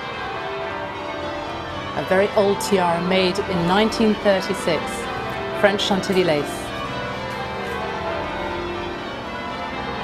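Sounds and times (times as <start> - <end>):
church bells pealing: 0.0 - 10.0.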